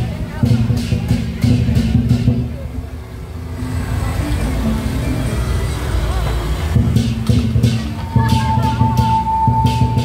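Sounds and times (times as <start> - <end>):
drum and cymbal beat: 0.0 - 4.9, 6.3 - 10.0.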